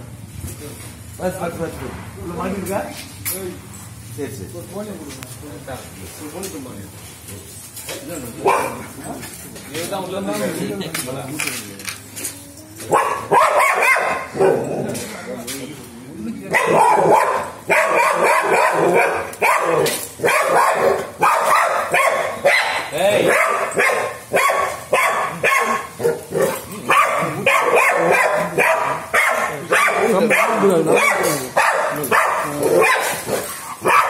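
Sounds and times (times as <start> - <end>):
dog barking: 8.4 - 8.9, 12.9 - 14.8, 16.5 - 34.0.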